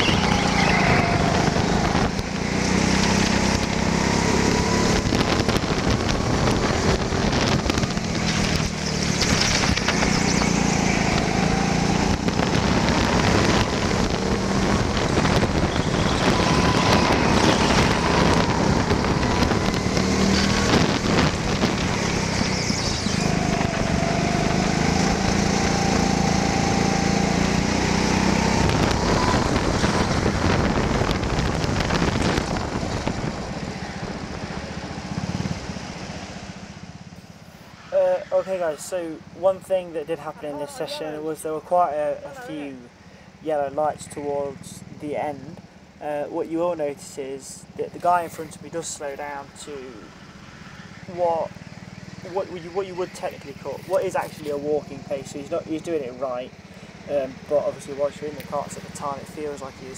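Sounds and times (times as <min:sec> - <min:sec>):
wind noise on microphone: 0:00.0 - 0:36.6
go-kart engine at speed: 0:00.0 - 0:59.9.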